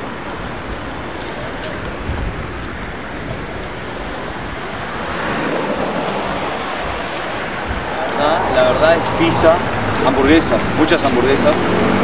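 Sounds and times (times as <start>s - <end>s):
passing traffic: 0.0s - 12.0s.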